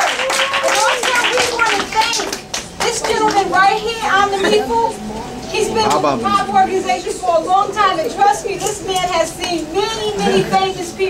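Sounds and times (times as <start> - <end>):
audience clapping: 0.0 - 3.8
voices talking and calling out: 0.0 - 11.0.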